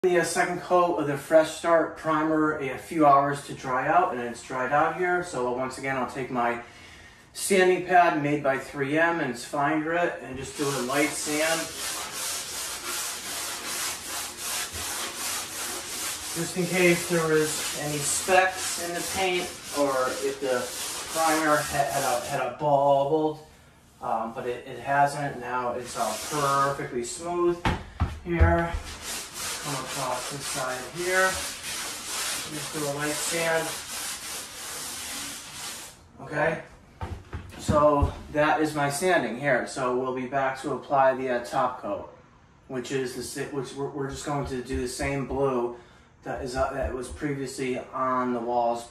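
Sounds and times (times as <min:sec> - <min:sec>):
sanding sponge rubbing on wall: 0:10.4 - 0:22.6, 0:25.0 - 0:27.6, 0:28.4 - 0:36.0.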